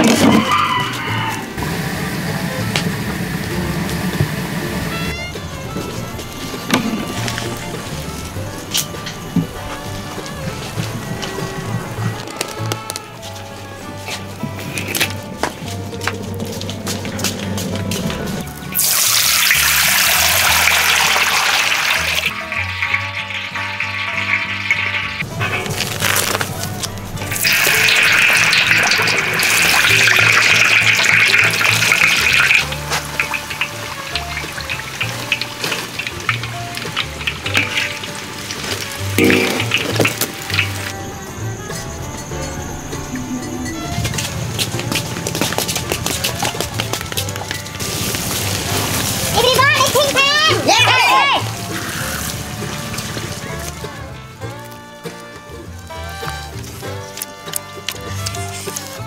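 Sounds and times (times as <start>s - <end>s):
background music: 0.0s - 59.0s
oil sizzling in a wok: 18.4s - 42.5s, 47.2s - 57.0s.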